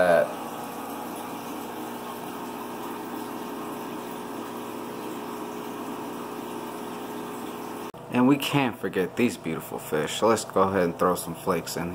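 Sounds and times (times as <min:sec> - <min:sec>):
aquarium air pump running: 0:00.0 - 0:11.9.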